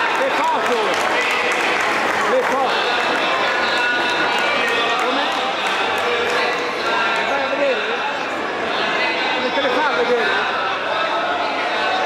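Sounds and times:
spectators shouting and cheering: 0.0s - 7.8s.

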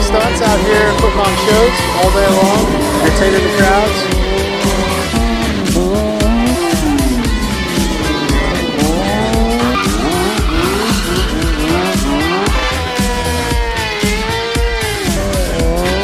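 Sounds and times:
tyre squeal: 0.0s - 15.7s
background music with steady beat: 0.0s - 16.0s
motorcycle engines revving: 0.0s - 16.0s.

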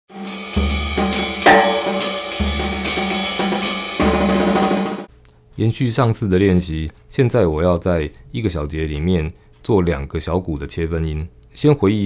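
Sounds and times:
hi-hat strokes: 0.2s - 4.0s
bass drum hits: 0.6s - 4.4s
snare hits: 1.4s - 4.1s.

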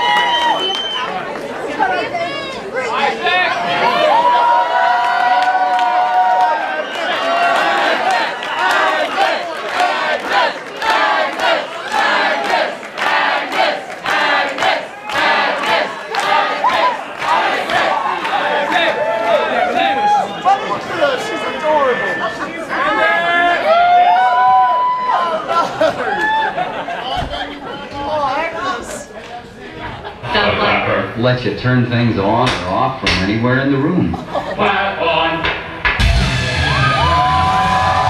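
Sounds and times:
audience cheering and yelling: 0.0s - 28.0s, 36.0s - 38.0s
sharp handclaps: 7.6s - 18.9s.

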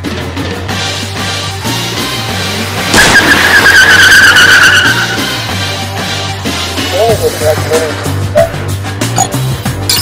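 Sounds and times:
background music: 0.0s - 10.0s
tire screech: 3.0s - 5.6s.

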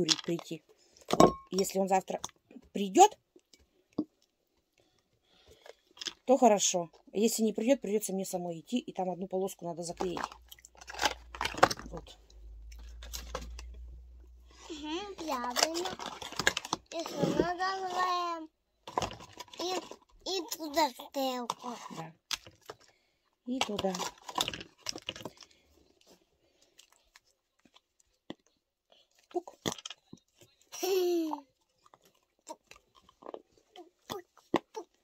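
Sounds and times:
person talking: 6.3s - 10.3s, 16.9s - 18.5s.

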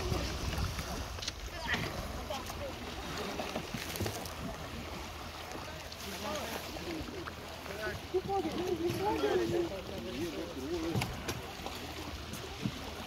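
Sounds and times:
indistinct background talk: 0.0s - 13.0s
water: 0.0s - 13.0s
wind: 0.0s - 13.0s.

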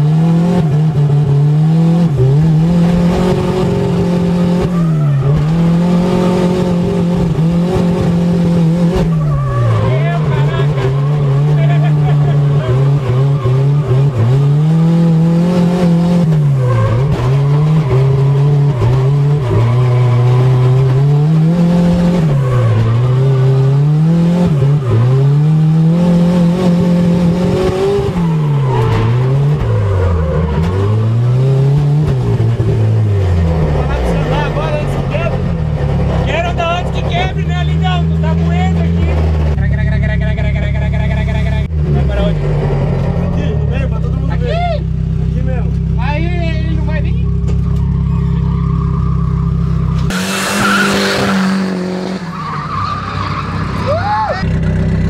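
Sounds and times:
car engine revving: 0.0s - 55.0s.

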